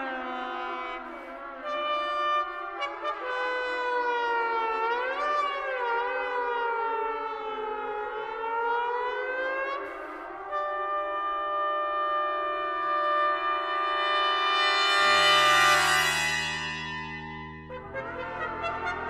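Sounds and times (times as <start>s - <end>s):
trombone and orchestra: 10.5s - 19.0s.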